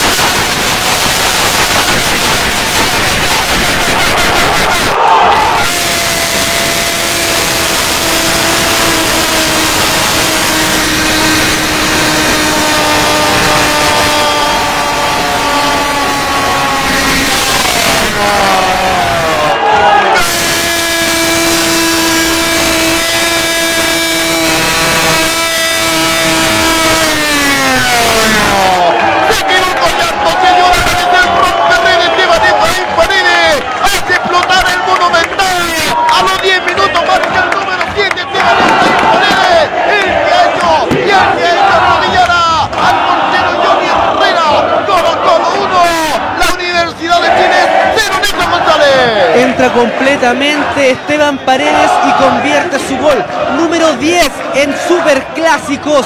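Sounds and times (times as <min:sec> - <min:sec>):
crowd noise: 0:00.0 - 0:56.0
commentator shouting goal: 0:03.3 - 0:56.0.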